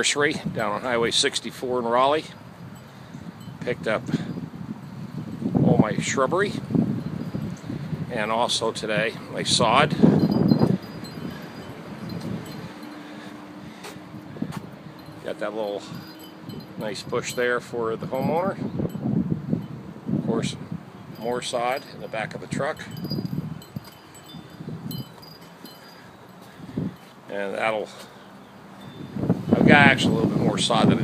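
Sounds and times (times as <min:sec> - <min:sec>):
wind buffeting microphone: 0:00.0 - 0:27.2, 0:28.5 - 0:31.0.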